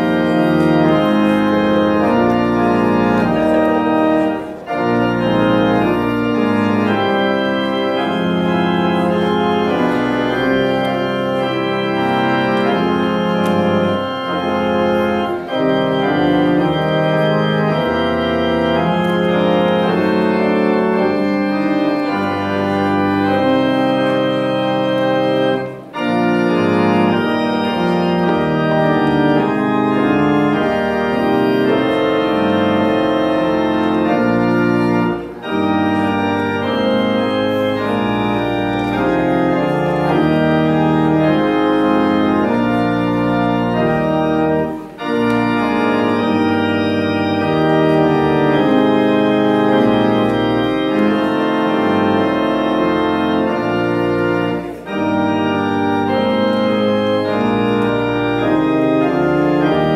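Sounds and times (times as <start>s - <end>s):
pipe organ chords: 0.0s - 59.9s.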